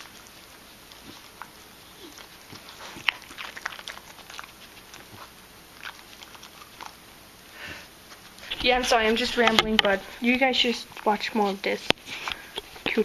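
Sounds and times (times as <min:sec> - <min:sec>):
dog crunching carrots: 0:00.0 - 0:13.0.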